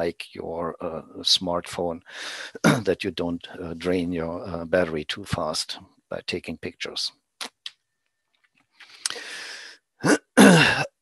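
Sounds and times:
man clearing his throat: 0:02.6 - 0:02.9, 0:10.0 - 0:11.0.

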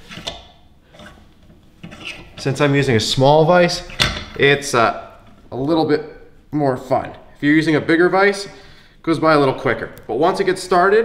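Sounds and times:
bench vise being tightened: 0:00.0 - 0:01.2.

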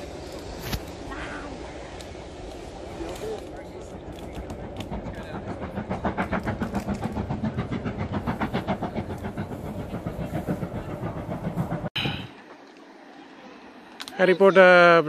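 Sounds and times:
steam locomotive exhaust beating: 0:00.0 - 0:12.4.

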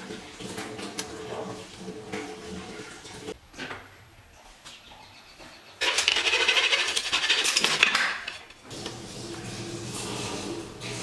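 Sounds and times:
tape measure retracting rattle: 0:05.8 - 0:08.6.

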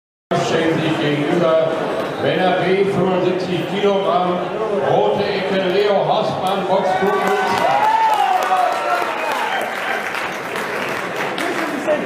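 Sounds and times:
audience applauding: 0:06.9 - 0:12.0.

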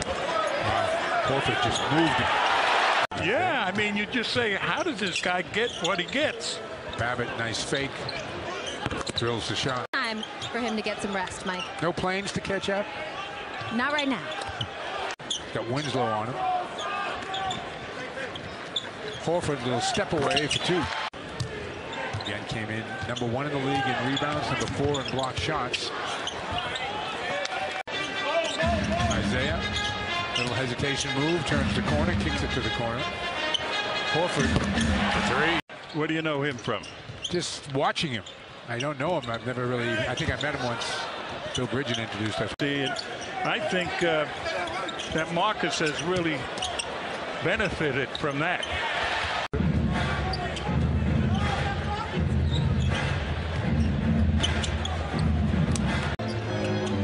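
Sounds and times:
busy crowd: 0:00.0 - 0:57.0
court noise: 0:00.0 - 0:57.0
ball bouncing: 0:34.4 - 0:35.1.

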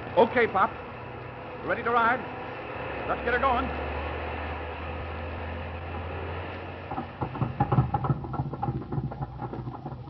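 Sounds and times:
speedboat engine puttering: 0:02.9 - 0:10.0.

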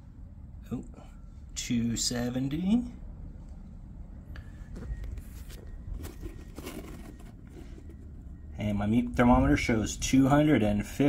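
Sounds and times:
low steady rumble: 0:00.0 - 0:11.0
handling knocks and rustles: 0:04.7 - 0:08.3.

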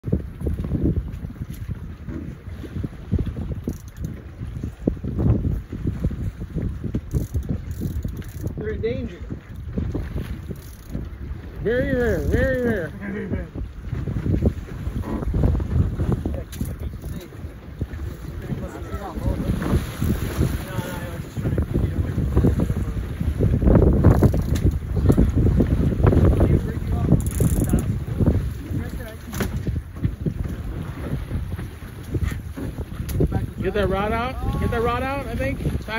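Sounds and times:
wind buffeting microphone: 0:00.0 - 0:35.9.

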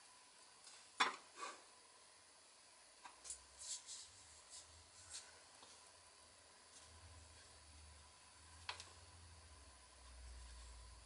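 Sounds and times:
soft paintbrush strokes on paper: 0:03.4 - 0:08.1, 0:09.9 - 0:11.0.

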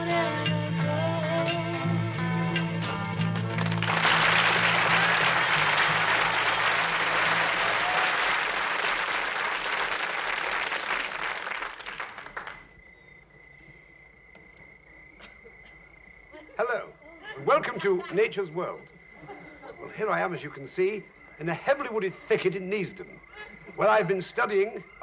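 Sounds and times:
audience applause: 0:03.2 - 0:12.9
faint steady high tone: 0:11.8 - 0:25.0.

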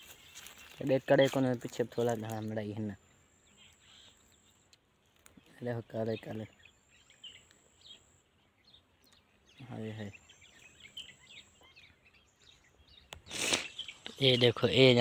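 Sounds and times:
small bird chirps: 0:00.0 - 0:15.0
brief rush of noise: 0:13.3 - 0:13.8.

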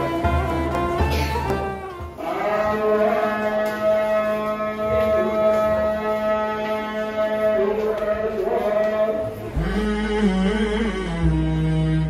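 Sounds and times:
man chanting call to prayer: 0:02.2 - 0:12.0.

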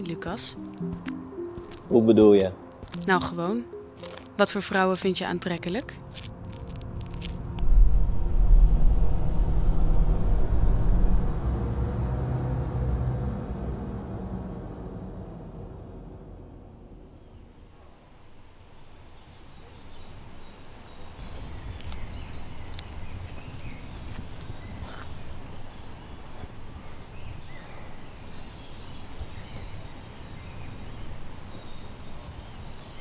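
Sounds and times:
footsteps on brick paving: 0:00.2 - 0:07.7, 0:21.2 - 0:26.7
short crackles: 0:06.0 - 0:07.7
deep low rumble: 0:06.2 - 0:18.0.

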